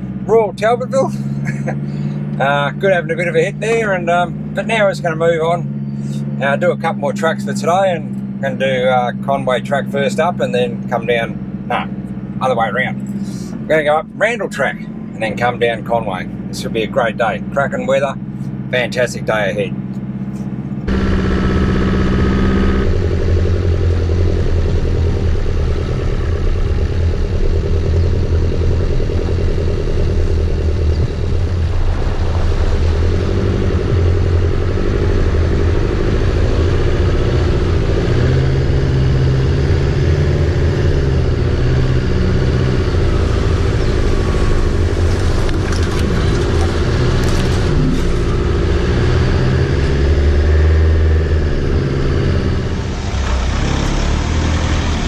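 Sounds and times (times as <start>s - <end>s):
vehicle engine running: 0.0s - 55.0s
water splashing against vehicle: 44.9s - 48.4s.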